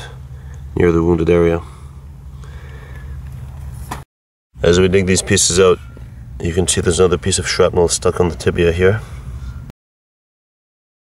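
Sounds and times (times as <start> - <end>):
engine idling: 0.0 - 3.8.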